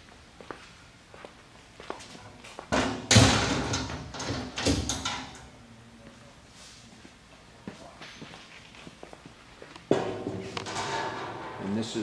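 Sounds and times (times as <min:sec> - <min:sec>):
sheet metal panel clattering: 0:02.8 - 0:05.4, 0:09.9 - 0:12.0.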